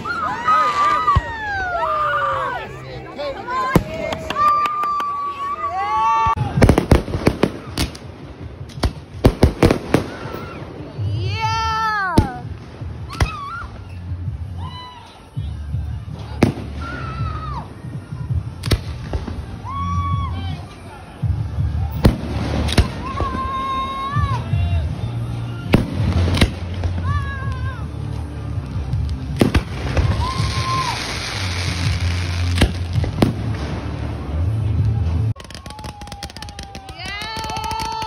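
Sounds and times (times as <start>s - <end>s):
fireworks bangs: 6.3s - 13.6s, 29.3s - 34.5s, 35.4s - 38.0s.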